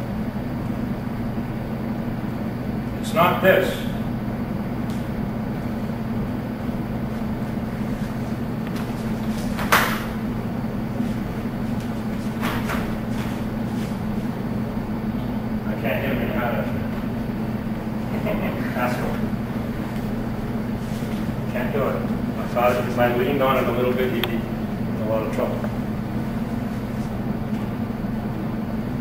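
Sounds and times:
low electrical hum: 0:00.0 - 0:29.0.

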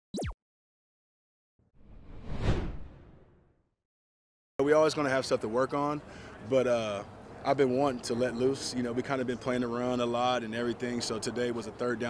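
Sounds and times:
whoosh: 0:01.8 - 0:03.5.

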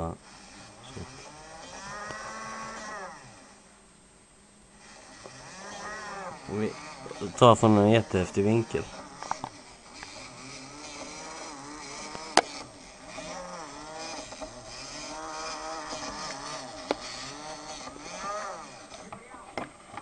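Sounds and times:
small electric motor whining: 0:00.0 - 0:04.0, 0:04.6 - 0:20.0
sharp clicks: 0:04.8 - 0:20.0.

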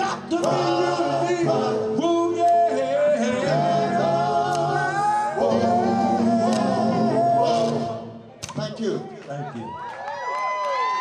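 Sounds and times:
male vocal group singing r and b: 0:00.0 - 0:08.3.

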